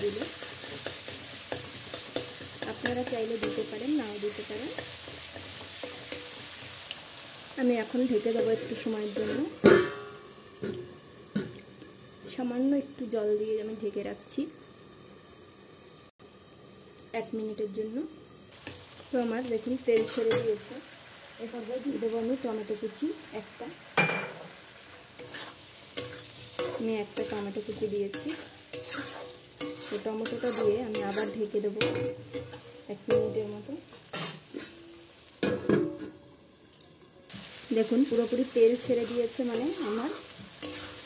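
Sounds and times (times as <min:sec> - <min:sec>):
covered pot simmering hiss: 0:00.0 - 0:41.0
frying sizzle: 0:00.0 - 0:41.0
steel lid clattering on pan: 0:09.6 - 0:10.8.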